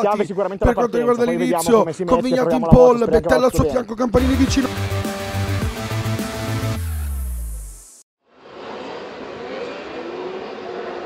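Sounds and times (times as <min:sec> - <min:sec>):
music sting with falling bass: 0:04.2 - 0:08.0.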